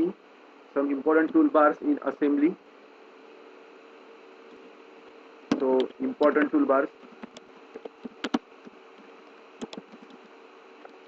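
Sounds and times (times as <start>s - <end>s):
faint steady hum: 0.0s - 11.0s
keyboard typing clicks: 7.1s - 10.3s.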